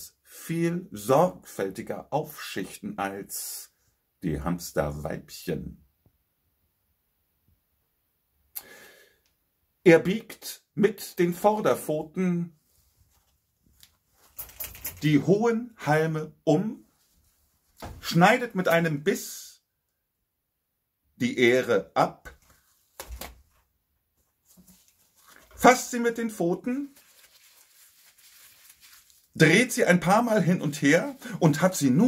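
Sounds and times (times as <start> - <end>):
faint rustling and handling noise: 11.2 - 15.5, 16.7 - 18.8, 22.2 - 32.0.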